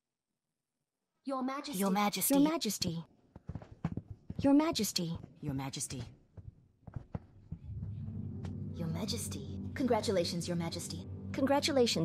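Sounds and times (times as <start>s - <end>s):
quick light footsteps: 3.3s - 8.6s.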